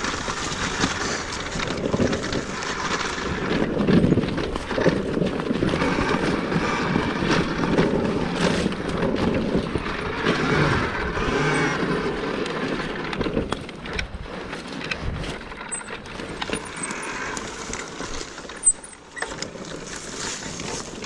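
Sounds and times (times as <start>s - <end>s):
knocks and rattles over bumps: 0.0s - 21.0s
tyres rolling over dirt: 0.0s - 21.0s.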